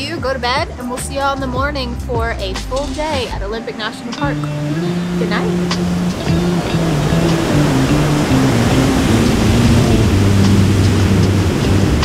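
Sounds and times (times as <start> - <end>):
slow background music: 0.0 - 12.0
ocean surf breaking: 2.9 - 12.0.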